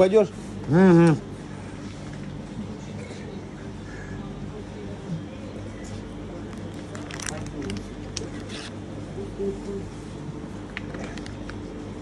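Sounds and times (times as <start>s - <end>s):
indistinct talk: 0.0s - 11.4s
crisp rustles: 6.6s - 8.8s.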